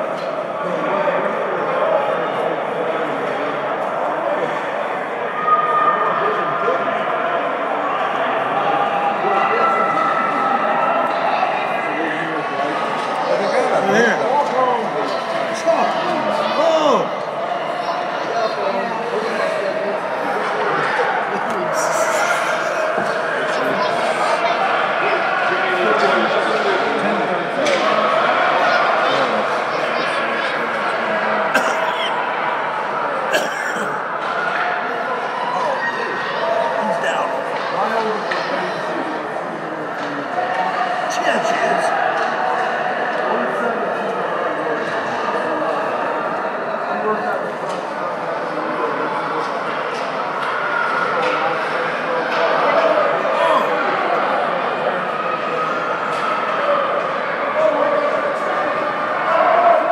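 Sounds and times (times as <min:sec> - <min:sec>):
overlapping voices calling out: 0:19.4 - 0:26.2
hockey sticks and skates clacking: 0:27.5 - 0:27.9, 0:37.4 - 0:39.2, 0:39.9 - 0:40.7, 0:49.4 - 0:52.8.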